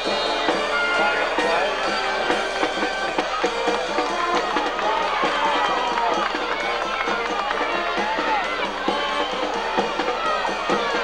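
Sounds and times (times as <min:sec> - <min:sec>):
band music: 0:00.0 - 0:11.0
crowd talking and shouting: 0:00.0 - 0:11.0.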